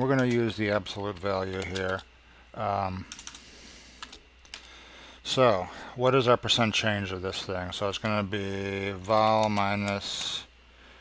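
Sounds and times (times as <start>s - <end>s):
computer keyboard keystrokes: 0.0s - 2.1s, 3.1s - 3.4s, 4.0s - 4.7s, 9.2s - 10.3s.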